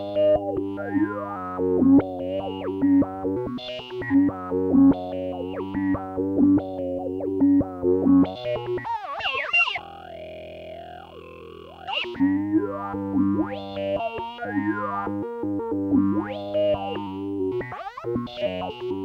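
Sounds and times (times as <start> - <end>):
modular synthesizer tones: 0.0 - 19.0
held synth drone: 9.8 - 17.6.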